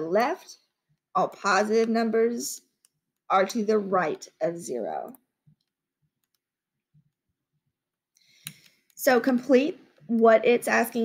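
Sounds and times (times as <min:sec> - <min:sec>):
computer mouse clicks: 0:01.2 - 0:03.6, 0:05.1 - 0:07.2, 0:08.2 - 0:09.0.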